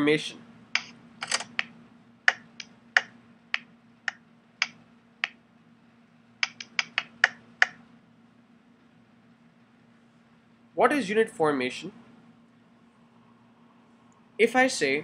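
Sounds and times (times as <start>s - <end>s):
faint low hum: 0.0s - 15.0s
chalk tapping on chalkboard: 6.4s - 7.8s.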